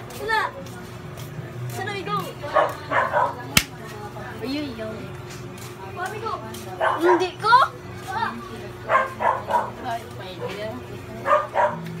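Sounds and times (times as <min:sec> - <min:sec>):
dog barking: 0:02.5 - 0:03.5, 0:06.8 - 0:07.3, 0:08.9 - 0:09.8, 0:11.2 - 0:11.9.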